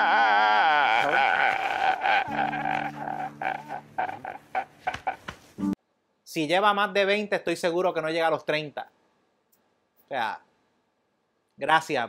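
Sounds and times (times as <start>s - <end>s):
man wailing and sobbing: 0.0s - 5.3s.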